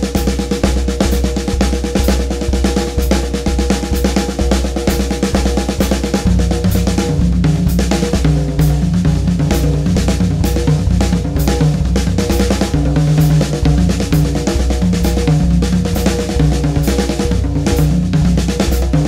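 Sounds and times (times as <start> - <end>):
drum kit rapid snare and toms: 0.0 - 19.0.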